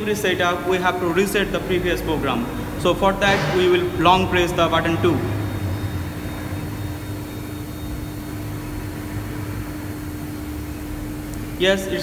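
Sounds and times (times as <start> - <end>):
machinery low drone: 0.0 - 12.0.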